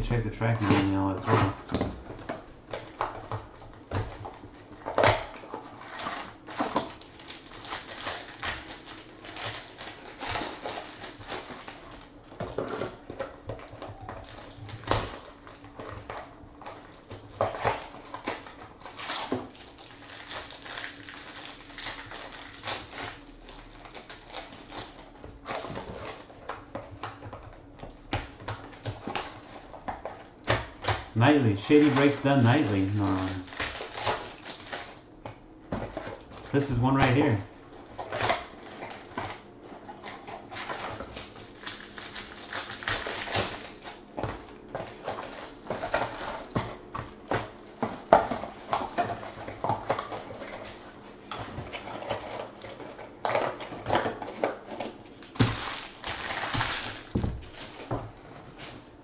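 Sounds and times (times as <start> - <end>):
wrappers crinkling and tearing: 0.2 - 1.7, 2.6 - 58.0
cards being handled: 31.3 - 34.7.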